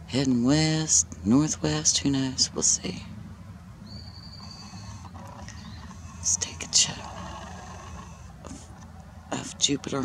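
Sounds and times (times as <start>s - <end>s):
faint low rumble with hiss: 0.0s - 10.0s.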